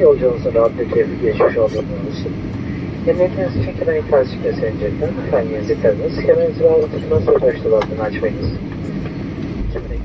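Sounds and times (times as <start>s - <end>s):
aircraft cabin rumble: 0.0s - 10.0s.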